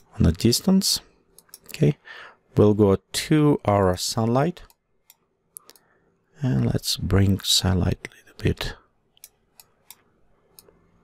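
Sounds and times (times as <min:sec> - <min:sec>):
faint mouse clicks: 0:04.6 - 0:05.9.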